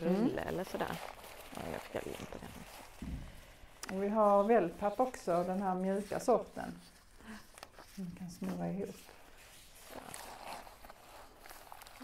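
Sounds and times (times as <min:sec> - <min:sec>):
paper and cardboard crinkling: 0:00.0 - 0:12.0.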